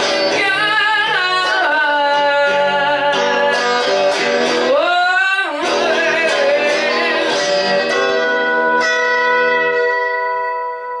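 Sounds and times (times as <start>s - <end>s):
electric guitar chord ringing: 5.6s - 11.0s.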